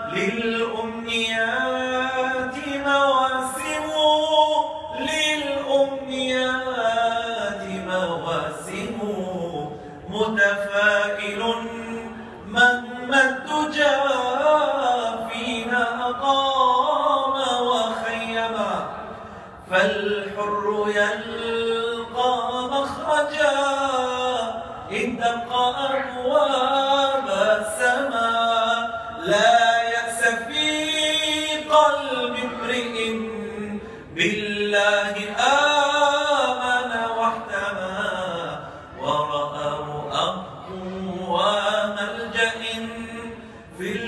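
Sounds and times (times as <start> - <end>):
man singing unaccompanied: 0.0 - 44.0.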